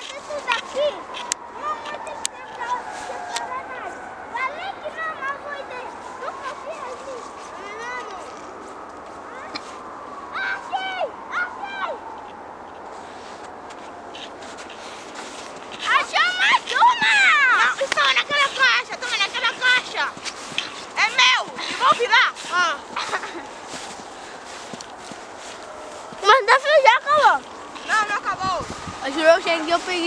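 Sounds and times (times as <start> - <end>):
children shouting and squealing: 0.0 - 30.0.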